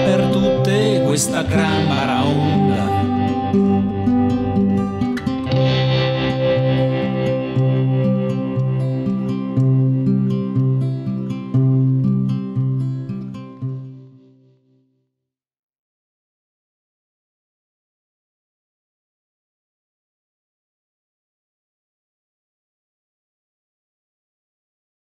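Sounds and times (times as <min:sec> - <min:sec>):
guitar chords: 0:00.0 - 0:14.8.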